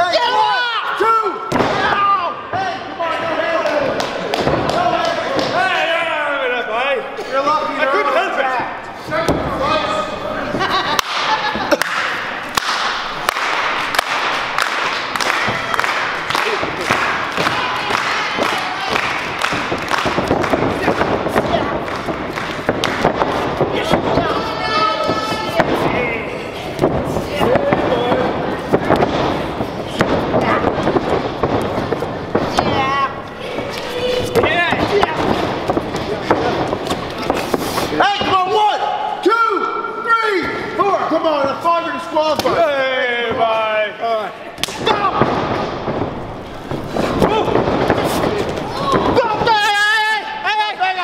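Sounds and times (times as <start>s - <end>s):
crowd talking and calling out: 0.0s - 51.0s.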